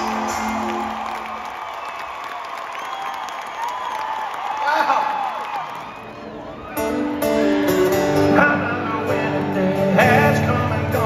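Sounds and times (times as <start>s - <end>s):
live country band playing: 0.0s - 1.4s, 6.2s - 11.0s.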